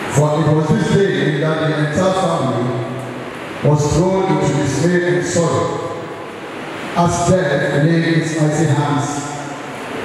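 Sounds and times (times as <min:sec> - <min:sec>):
man chanting over a microphone: 0:00.1 - 0:03.0, 0:03.6 - 0:06.0, 0:07.0 - 0:09.4.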